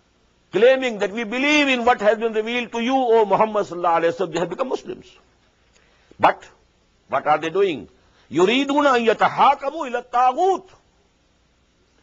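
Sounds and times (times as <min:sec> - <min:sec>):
man speaking: 0:00.5 - 0:05.3, 0:06.2 - 0:10.8.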